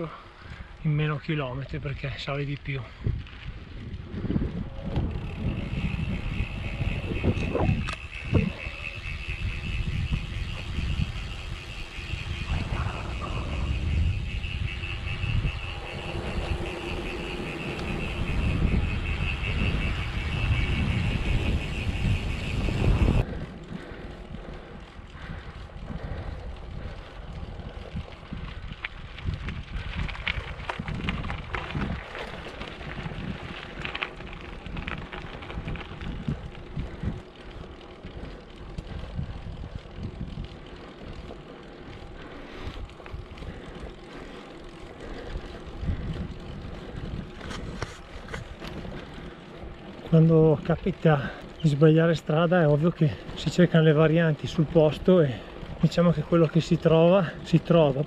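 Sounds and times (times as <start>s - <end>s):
bicycle tyres rolling: 0.0s - 58.0s
bike clicks and rattles: 0.0s - 58.0s
wind buffeting microphone: 0.0s - 58.0s.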